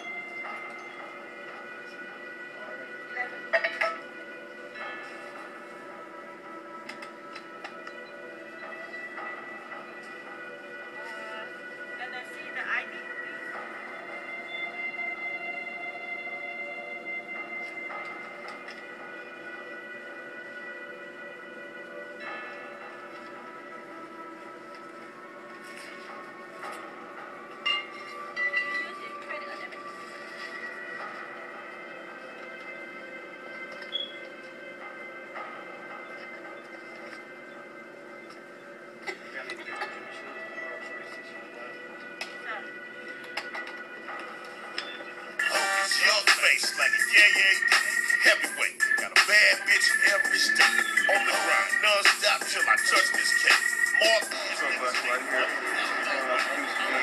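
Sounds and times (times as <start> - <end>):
sustained drone of held tones: 44.4 - 57.0
loud rap music: 45.4 - 57.0.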